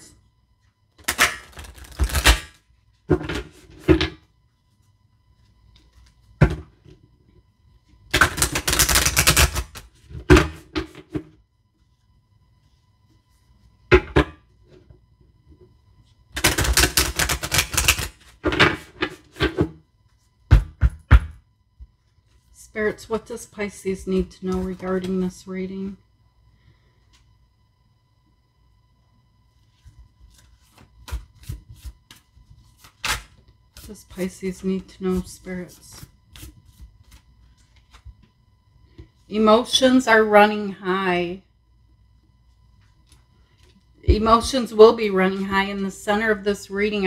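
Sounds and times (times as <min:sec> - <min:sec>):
cards riffle shuffling: 0:01.4 - 0:02.5, 0:08.3 - 0:09.8, 0:16.4 - 0:18.2, 0:29.7 - 0:33.9, 0:35.1 - 0:38.1.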